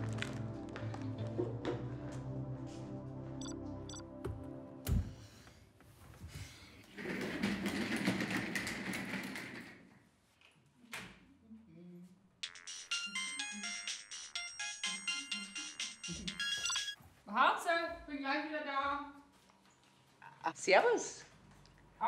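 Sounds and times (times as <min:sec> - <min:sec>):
mobile phone ringtone melody: 0:12.4 - 0:17.0.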